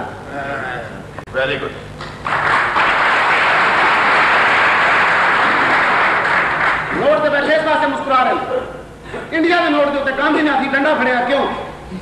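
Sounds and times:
audience applauding: 2.2 - 7.0.

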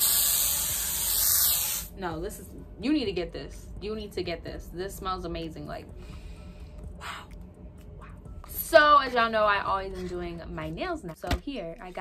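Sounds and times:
aerosol spray hiss: 0.0 - 1.9.

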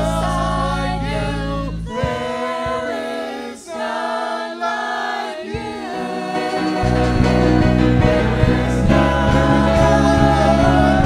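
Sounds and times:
voices singing together: 0.0 - 11.0
instrumental accompaniment: 5.6 - 11.0.

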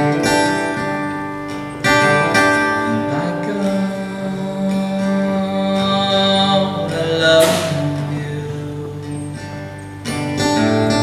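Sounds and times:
acoustic guitar chords: 0.0 - 11.0
man singing a long held note: 2.9 - 9.2.

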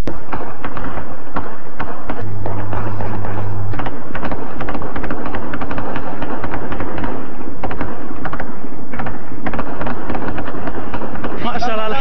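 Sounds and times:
steady rumble: 0.0 - 11.3
gunfire cracks: 0.0 - 12.0.

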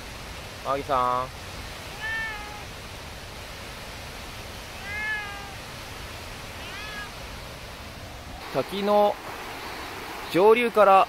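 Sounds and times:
waterfall rushing: 0.0 - 11.0
cat meowing: 1.9 - 2.7, 4.7 - 5.6, 6.5 - 7.2.

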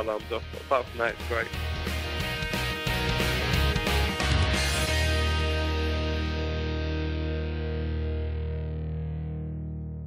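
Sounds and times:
distorted electric guitar chord: 1.2 - 10.0.

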